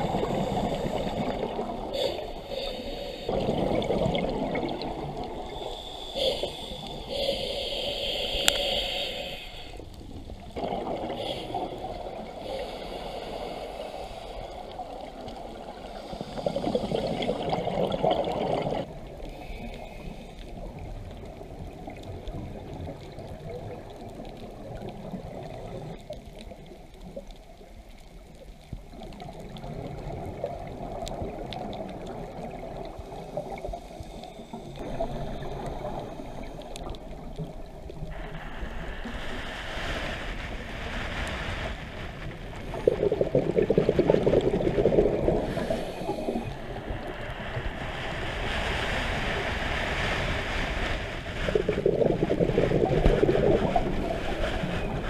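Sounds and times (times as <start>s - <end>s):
scuba exhaust bubbles gurgling: 0.0s - 27.3s, 28.6s - 39.6s, 42.2s - 48.4s, 51.2s - 55.0s
muffled underwater noise: 0.0s - 55.0s.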